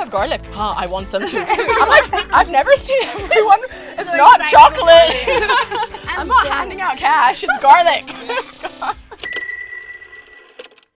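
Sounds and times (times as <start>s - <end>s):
bell-like electronic tone: 9.2s - 10.6s.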